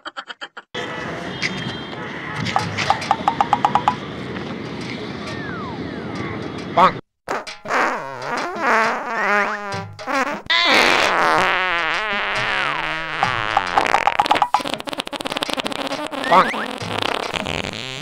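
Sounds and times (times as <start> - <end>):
fart sound effects from phone: 2.6 - 4.0, 7.3 - 18.0.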